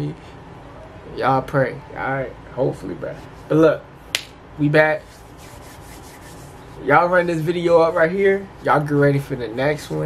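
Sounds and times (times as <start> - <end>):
hands rubbing together: 5.0 - 7.4.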